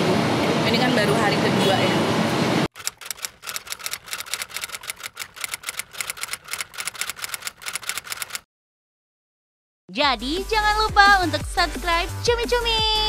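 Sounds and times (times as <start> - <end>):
noisy outdoor interview sound: 0.0 - 8.3
rapid uneven clicking: 2.7 - 8.4.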